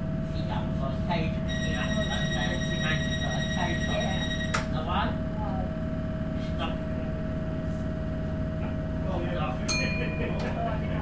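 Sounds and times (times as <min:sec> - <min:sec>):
train electrical hum: 0:00.0 - 0:11.0
people talking: 0:00.4 - 0:05.7, 0:09.0 - 0:11.0
steady high tone: 0:01.5 - 0:04.6.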